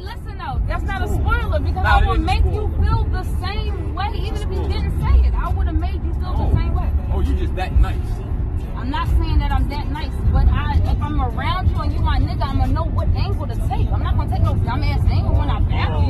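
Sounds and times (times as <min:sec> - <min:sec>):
people talking: 0:00.0 - 0:16.0
road rumble inside car: 0:00.0 - 0:16.0.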